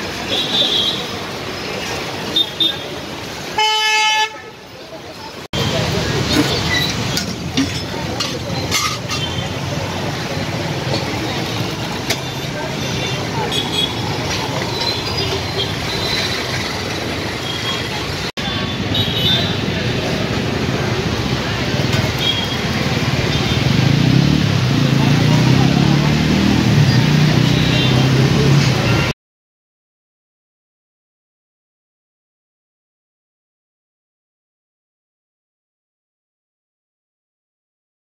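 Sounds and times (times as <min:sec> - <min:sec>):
people talking: 0:00.0 - 0:03.6, 0:04.4 - 0:29.2
street noise: 0:00.0 - 0:29.2.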